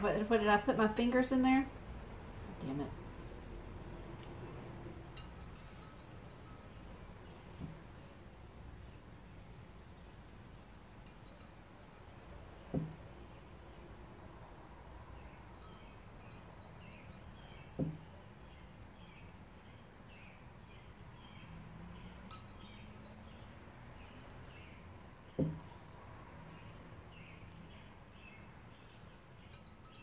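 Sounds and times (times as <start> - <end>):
dull thumps: 7.5 - 8.0, 12.7 - 13.1, 17.7 - 18.2, 25.4 - 25.8.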